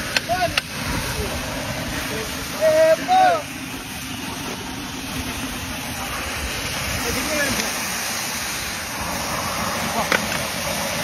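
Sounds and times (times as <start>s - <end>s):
water jetting from pipe: 0.0s - 11.0s.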